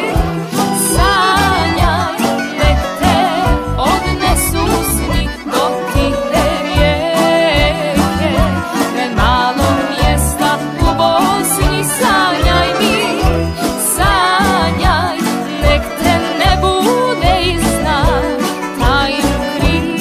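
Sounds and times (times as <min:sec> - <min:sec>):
band playing: 0:00.0 - 0:20.0
woman singing ornamented melody: 0:00.0 - 0:20.0.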